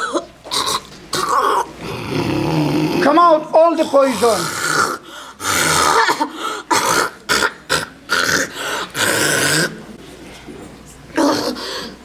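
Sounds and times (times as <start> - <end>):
woman retching and coughing: 5.6 - 8.5.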